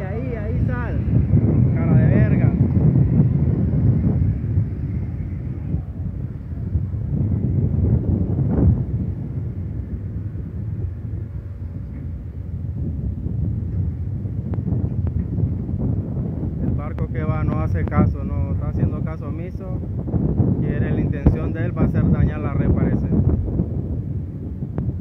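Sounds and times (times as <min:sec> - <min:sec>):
low boat rumble: 0:00.0 - 0:25.0
wind buffeting microphone: 0:00.0 - 0:25.0.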